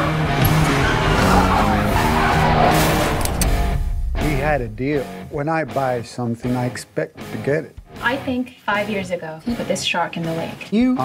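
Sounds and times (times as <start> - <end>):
tyres skidding: 0.0 - 4.1
background score music: 0.0 - 11.0.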